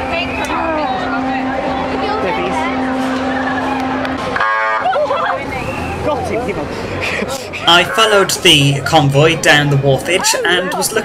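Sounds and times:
bus engine hum: 0:00.0 - 0:11.0
street crowd chatter and calls: 0:00.0 - 0:11.0.

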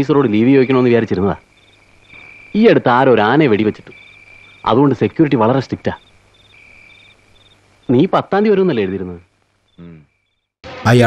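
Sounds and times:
crickets chirping: 0:00.0 - 0:10.5
man speaking: 0:02.6 - 0:03.9, 0:04.7 - 0:06.0, 0:09.8 - 0:10.0.

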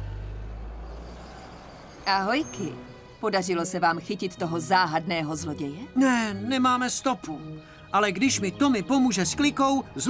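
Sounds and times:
cartoon vehicle engine rumble: 0:00.0 - 0:03.2.

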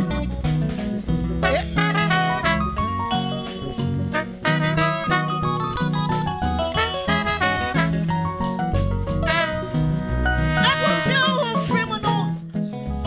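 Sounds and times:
live band playing: 0:00.0 - 0:13.0
trumpet and trombone: 0:01.4 - 0:03.2, 0:04.0 - 0:05.9, 0:06.7 - 0:08.6, 0:09.2 - 0:11.8.

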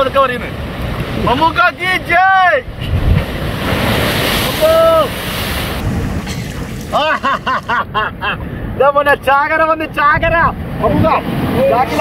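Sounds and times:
surf washing into rock pool: 0:00.0 - 0:08.9, 0:10.6 - 0:12.0
wind buffeting microphone: 0:00.0 - 0:12.0.

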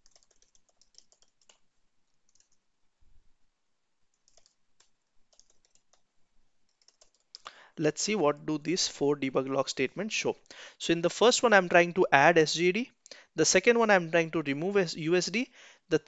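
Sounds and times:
computer keyboard typing: 0:00.0 - 0:01.6, 0:02.2 - 0:02.6, 0:04.1 - 0:07.5.

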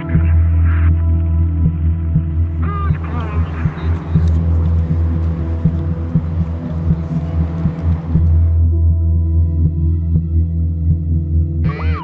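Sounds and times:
low throbbing droning hum: 0:00.0 - 0:12.0.

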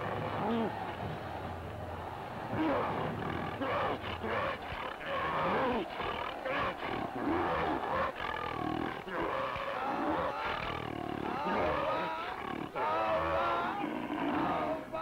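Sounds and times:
cartoon lion roaring and growling: 0:02.5 - 0:15.0.

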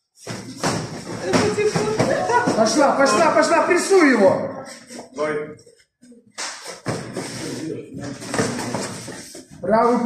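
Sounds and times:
voices shouting and talking in hall: 0:01.1 - 0:05.5.

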